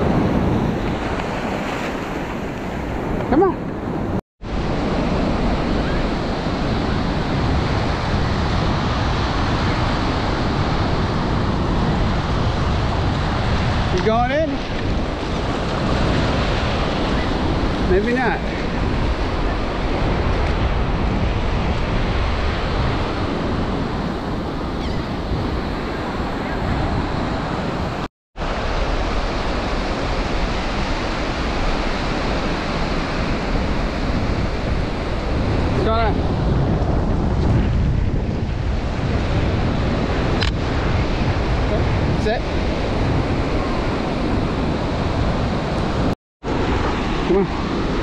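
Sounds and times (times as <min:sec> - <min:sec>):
ocean surf breaking: 0:00.0 - 0:48.0
wind buffeting microphone: 0:00.0 - 0:48.0.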